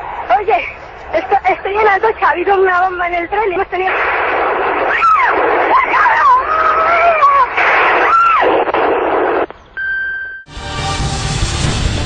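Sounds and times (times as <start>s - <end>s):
short electronic beep: 9.8s - 10.5s
loud music: 10.5s - 12.0s.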